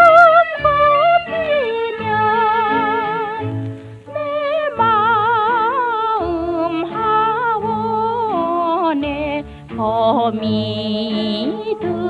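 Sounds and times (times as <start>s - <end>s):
small orchestra accompaniment: 0.0s - 12.0s
woman singing with vibrato: 0.0s - 12.0s.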